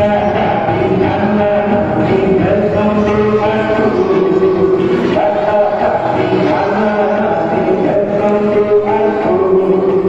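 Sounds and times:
group singing in unison: 0.0 - 10.0.

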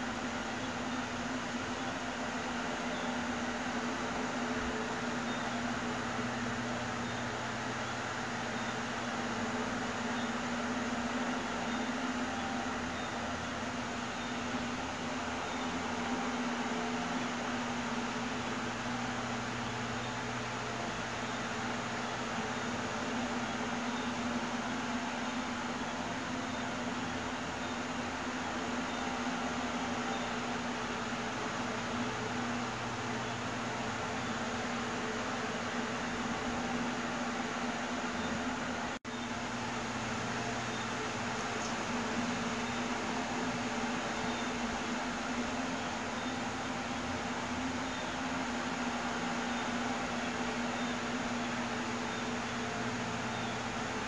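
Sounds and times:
steady hum: 0.0 - 54.0.

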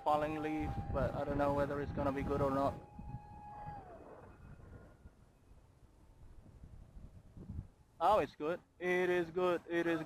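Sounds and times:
faint whine of electric motor: 0.0 - 5.0.

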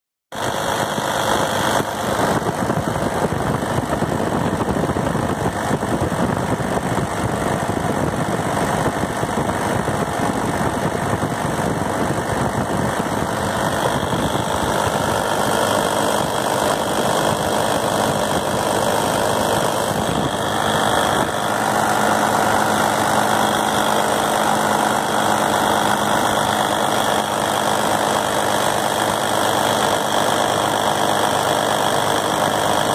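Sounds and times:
diesel tractor engine idling: 0.4 - 32.9.

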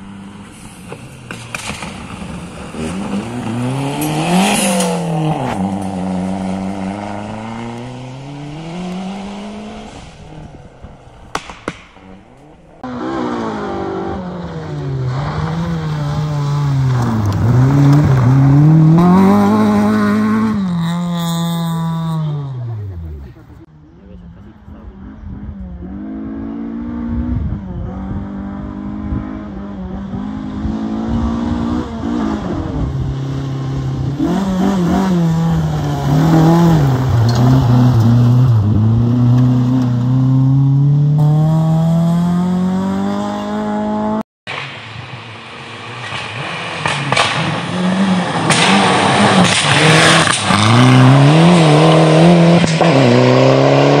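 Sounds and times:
rally car engine revving: 0.0 - 54.0.

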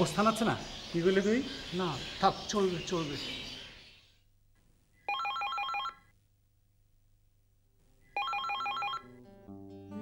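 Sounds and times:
telephone warbling ring: 5.1 - 6.1, 8.2 - 9.1.

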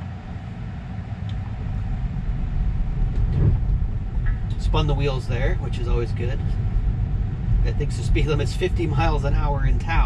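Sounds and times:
tyre and road rumble in car: 0.0 - 10.0
low thump: 2.9 - 4.6.

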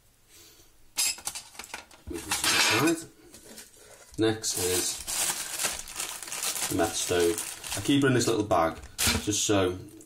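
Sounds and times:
metal pots clinking and scraping: 1.0 - 5.2.

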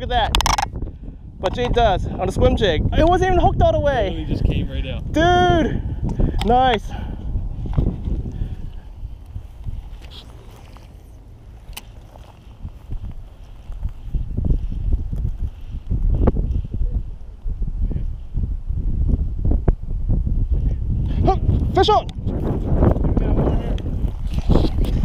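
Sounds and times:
wind buffeting microphone: 0.0 - 25.0
handling rustling: 9.1 - 16.0.

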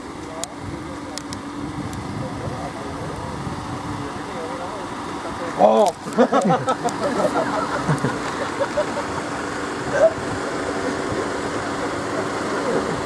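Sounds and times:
engine idling: 0.0 - 13.0
people's voices: 0.0 - 13.0.

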